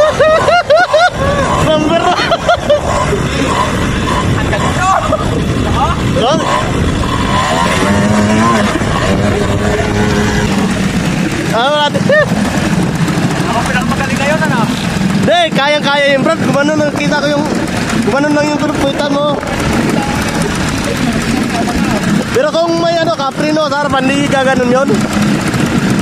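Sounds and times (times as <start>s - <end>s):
people talking: 0.0s - 10.6s, 11.5s - 12.4s, 13.4s - 25.2s
loud calls: 0.0s - 12.7s
quad bike engines running: 0.0s - 26.0s.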